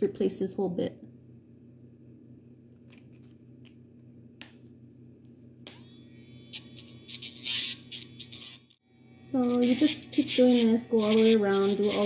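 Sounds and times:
grinder grinding toenail: 0:05.7 - 0:12.0
nail grinder humming: 0:05.7 - 0:12.0.

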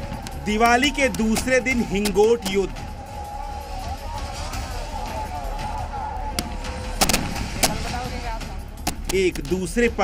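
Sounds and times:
sharp explosive bangs: 0:06.4 - 0:08.2.

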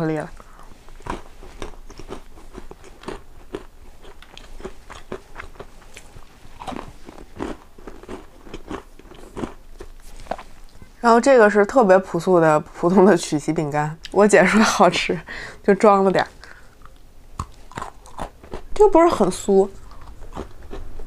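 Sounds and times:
person chewing crunchy cookie: 0:00.4 - 0:10.9, 0:16.5 - 0:18.8, 0:19.7 - 0:21.0.

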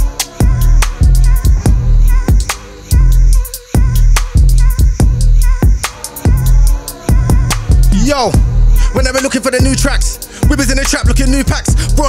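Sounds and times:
grime instrumental with heavy bass: 0:00.0 - 0:12.0
person rapping over a beat: 0:00.0 - 0:12.0.

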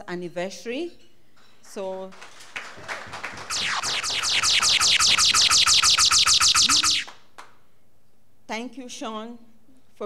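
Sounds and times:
rapid high falling chirps: 0:03.1 - 0:07.1.

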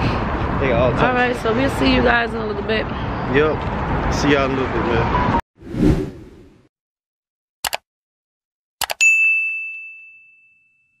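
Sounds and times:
bright notification bell ding: 0:09.0 - 0:11.0.

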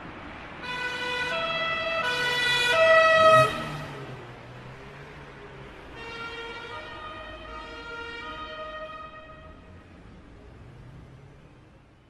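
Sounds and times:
two-tone emergency siren: 0:00.6 - 0:03.9, 0:05.8 - 0:09.6.

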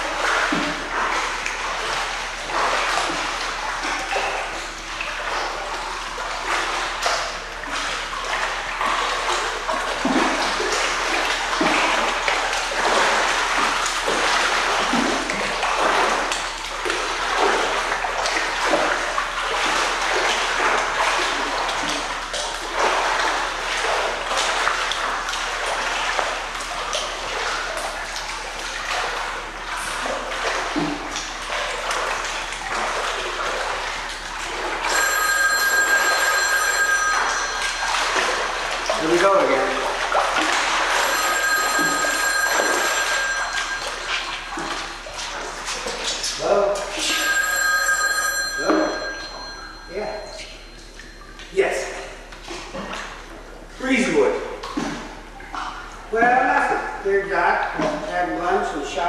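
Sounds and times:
pool water splashing: 0:00.0 - 0:59.0
telephone ringing: 0:34.8 - 0:39.8, 0:40.9 - 0:45.0, 0:46.9 - 0:51.3.

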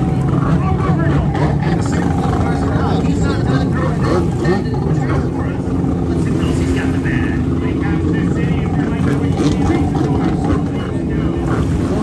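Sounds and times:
jet ski engine running: 0:00.0 - 0:12.0.

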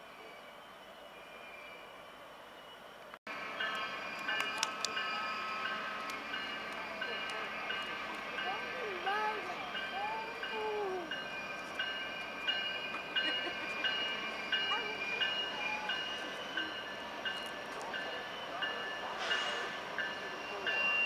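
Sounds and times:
train wheels squealing on rails: 0:00.0 - 0:21.0.

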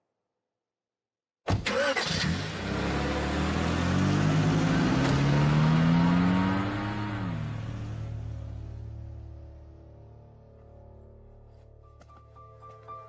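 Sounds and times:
car engine starting and revving: 0:01.5 - 0:10.2.

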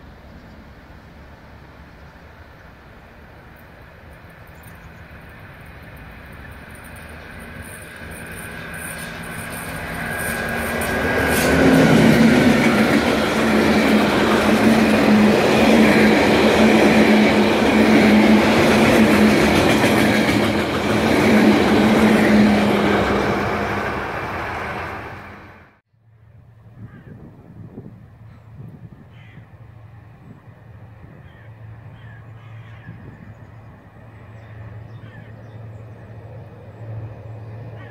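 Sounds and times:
train wheels clattering on rail: 0:05.7 - 0:25.2.

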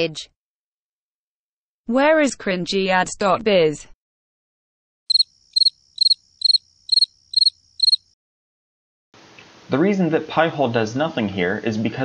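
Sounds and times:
cricket chirping: 0:05.1 - 0:08.2.

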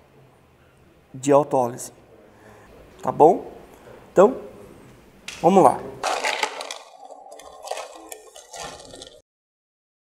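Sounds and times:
ice cubes clattering into bowl: 0:06.0 - 0:09.2.

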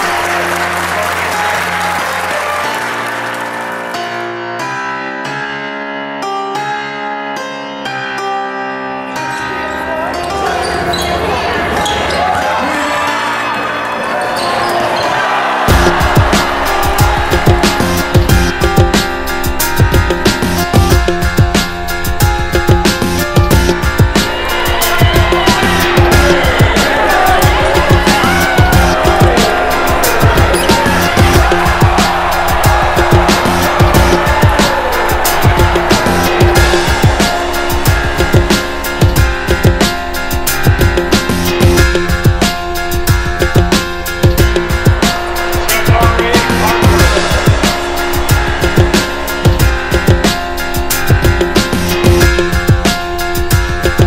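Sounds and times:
crowd voices echoing: 0:09.2 - 0:20.6, 0:23.7 - 0:43.1, 0:43.7 - 0:53.4
background music with steady beat: 0:15.2 - 0:54.0.

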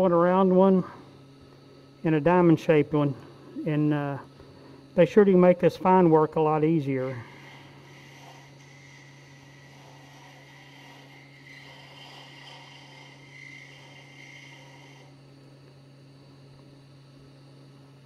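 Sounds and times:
wood lathe humming: 0:00.0 - 0:16.7
faint hiss of scraping cut: 0:06.8 - 0:15.2.

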